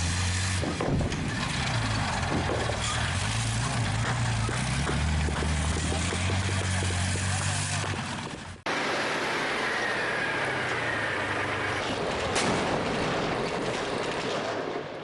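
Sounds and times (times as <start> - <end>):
rough noisy rumble: 0.0 - 15.0
tank engine droning: 0.0 - 15.0
sharp crack: 11.7 - 15.0.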